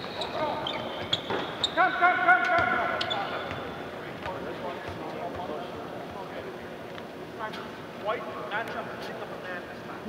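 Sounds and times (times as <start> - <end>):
hubbub of players: 0.0 - 10.0.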